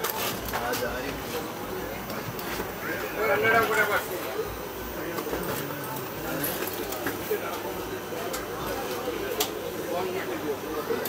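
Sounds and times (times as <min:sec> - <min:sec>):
indistinct voices chattering: 0:00.0 - 0:11.0.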